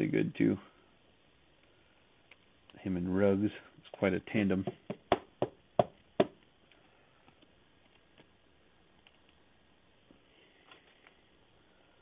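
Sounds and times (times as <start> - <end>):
cards and plastic holders rustling: 10.2 - 11.3.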